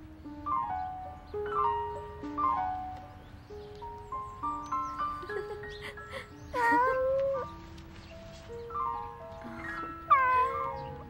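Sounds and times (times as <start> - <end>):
gentle melodic background music: 0.0 - 11.0
cat meowing: 6.6 - 7.5, 9.6 - 11.0.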